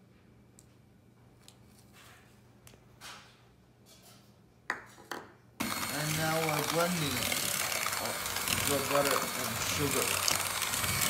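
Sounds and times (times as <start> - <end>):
sugar pouring into plastic bowl: 5.6 - 11.0.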